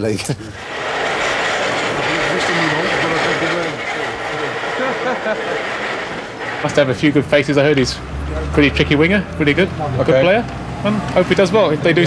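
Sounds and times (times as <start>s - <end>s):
people talking: 0.0s - 12.0s
street noise: 0.0s - 12.0s
person laughing: 4.8s - 5.7s.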